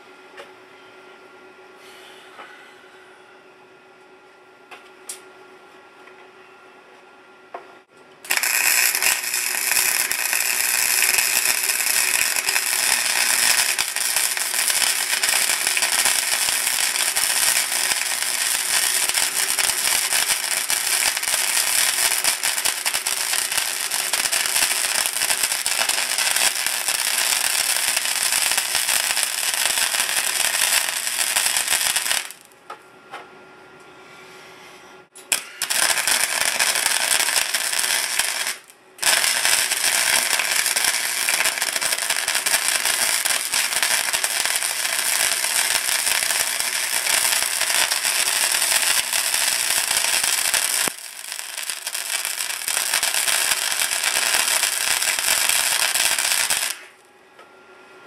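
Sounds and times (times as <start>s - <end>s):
arc welder crackling: 8.2s - 32.6s, 35.2s - 57.1s.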